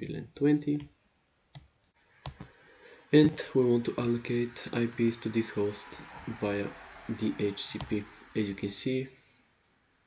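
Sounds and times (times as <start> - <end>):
computer mouse clicks: 1.6 - 2.5.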